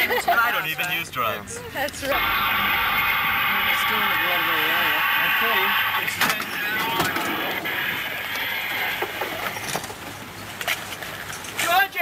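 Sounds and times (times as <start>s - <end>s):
vehicle noise: 0.2s - 12.0s
indistinct voices: 1.4s - 9.8s
wavering pitched sound: 1.8s - 8.7s.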